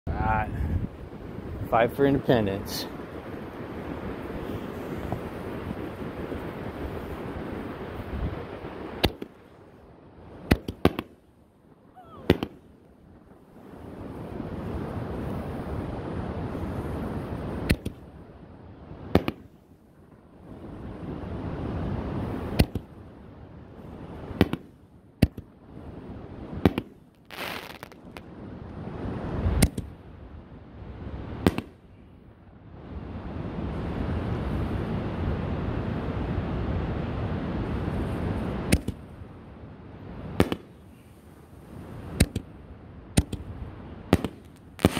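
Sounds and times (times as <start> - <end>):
wind noise on microphone: 0.1 - 11.1, 11.9 - 19.4, 20.1 - 24.6, 25.3 - 44.9
firework bangs: 3.6 - 9.7, 10.3 - 11.3, 12.0 - 12.8, 19.0 - 19.6, 24.1 - 25.5, 26.5 - 28.2, 31.3 - 31.8, 40.3 - 40.9, 44.1 - 44.9
firework shells booming: 10.4 - 11.2, 12.2 - 12.7, 19.1 - 19.5, 24.3 - 25.5, 26.6 - 28.0, 31.4 - 31.8, 40.4 - 40.8, 44.1 - 44.9
brief hiss: 27.3 - 28.0
firework launch thump: 44.1 - 44.9.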